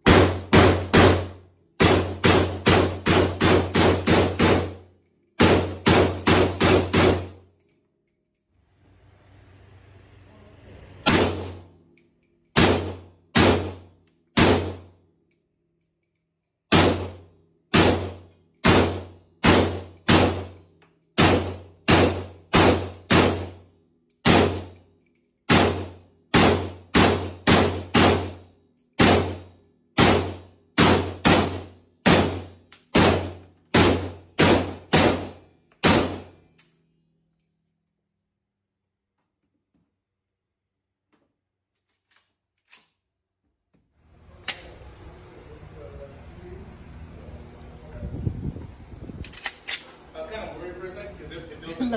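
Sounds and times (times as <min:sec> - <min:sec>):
semi-automatic gunfire echoing: 0:00.0 - 0:04.8, 0:05.4 - 0:07.4, 0:12.6 - 0:14.9, 0:16.7 - 0:20.6, 0:21.2 - 0:23.6, 0:25.5 - 0:28.4, 0:29.0 - 0:36.4.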